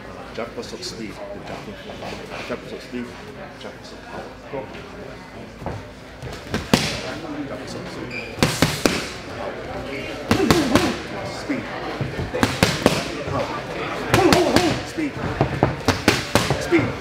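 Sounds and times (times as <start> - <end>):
boxing glove punches: 10.3 - 11.0, 14.2 - 14.8, 15.8 - 16.7.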